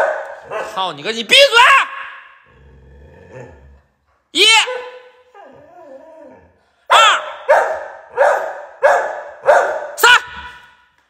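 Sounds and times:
dog barking: 0:00.0 - 0:00.9, 0:06.9 - 0:10.2.

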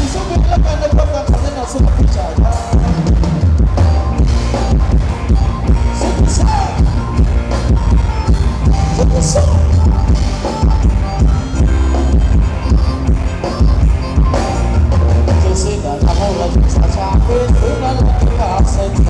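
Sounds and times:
drum kit: 0:00.0 - 0:19.0
heavy bass beat: 0:00.0 - 0:19.0
live band dance music: 0:00.0 - 0:19.0.

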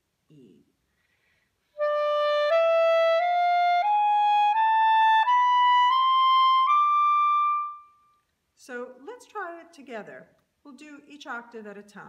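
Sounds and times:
clarinet playing a scale: 0:01.8 - 0:08.1.

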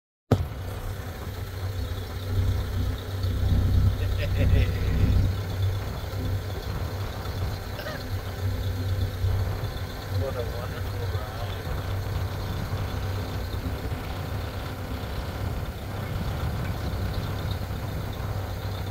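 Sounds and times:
car engine rumbling: 0:00.3 - 0:18.9.

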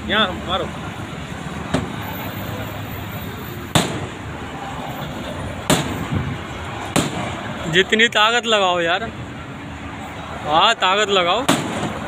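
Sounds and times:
background traffic noise: 0:00.0 - 0:12.0.

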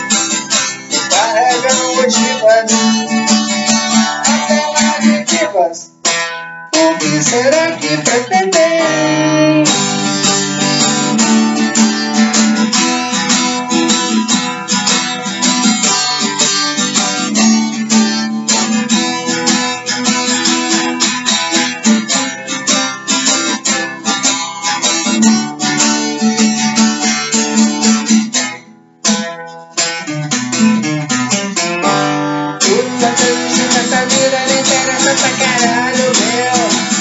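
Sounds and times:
acoustic guitar strumming: 0:00.0 - 0:37.0.

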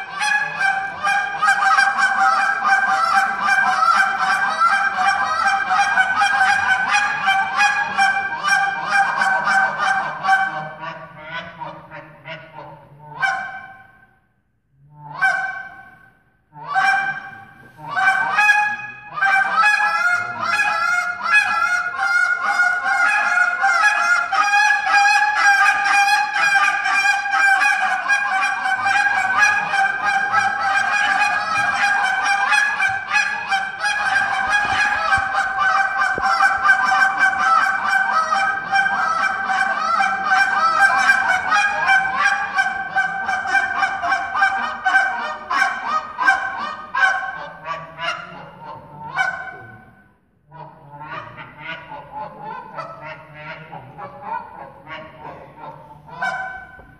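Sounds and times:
goose call honks and clucks: 0:00.0 - 0:14.1, 0:14.8 - 0:56.9.

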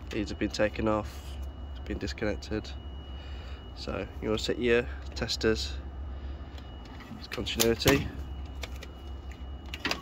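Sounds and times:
steady low rumble: 0:00.0 - 0:09.8.

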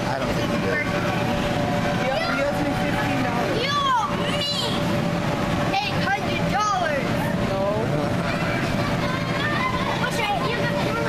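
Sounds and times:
children calling out: 0:08.1 - 0:11.0.

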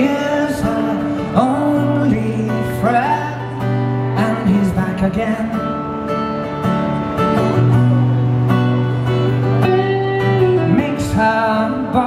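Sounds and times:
man singing a slow ballad: 0:00.0 - 0:06.1, 0:10.2 - 0:12.0
acoustic guitar strumming: 0:00.0 - 0:12.0.

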